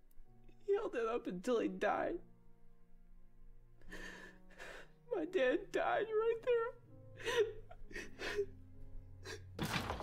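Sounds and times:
man crying and sobbing: 3.8s - 9.6s.

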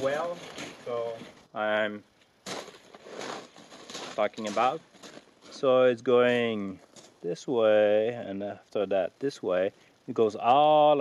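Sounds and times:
footsteps on gravel: 0.0s - 1.5s, 2.4s - 5.8s, 6.5s - 7.2s.

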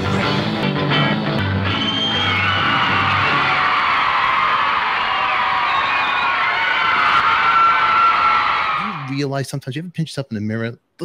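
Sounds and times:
audience screaming and cheering: 1.6s - 9.2s.

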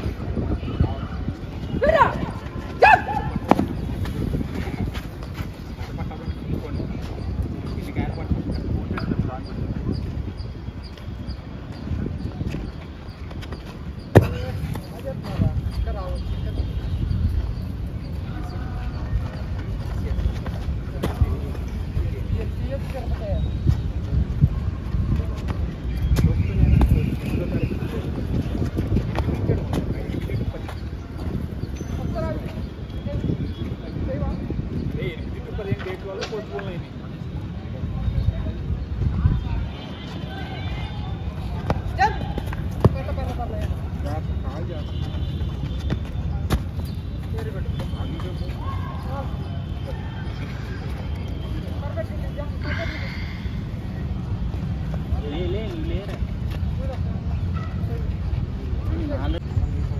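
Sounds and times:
group of people talking: 0.0s - 59.9s.

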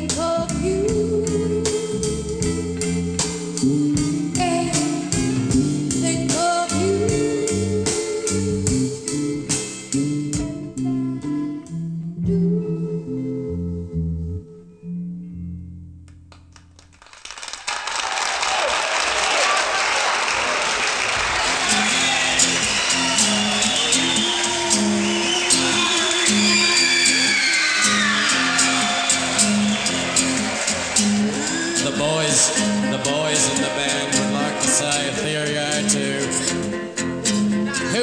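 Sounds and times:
rock song: 0.0s - 12.6s, 21.3s - 38.0s
audience applause and cheering: 16.3s - 36.2s.

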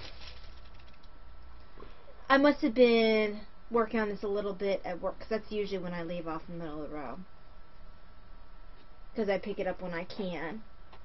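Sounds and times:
rustling of knitted fabric: 0.0s - 1.0s
steady low hum: 0.0s - 11.0s.

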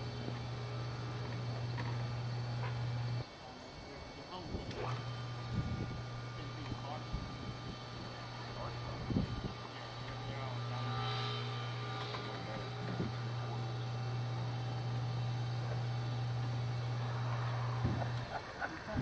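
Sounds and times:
hydraulic pump motor humming: 0.0s - 3.2s, 3.8s - 19.0s.

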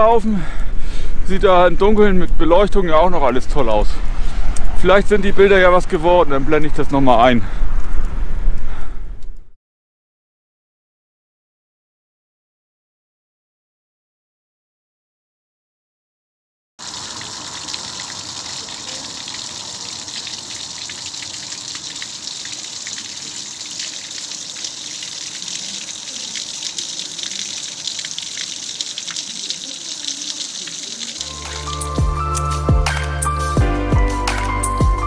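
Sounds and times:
splashing water: 16.8s - 32.2s
water drips: 16.8s - 32.2s
music with deep bass: 31.2s - 35.0s.

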